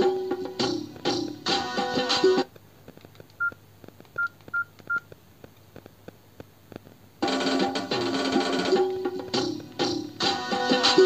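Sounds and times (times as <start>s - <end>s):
music from small speakers: 0.0s - 2.5s, 7.2s - 11.0s
phone key beeps: 3.4s - 3.6s, 4.2s - 5.1s.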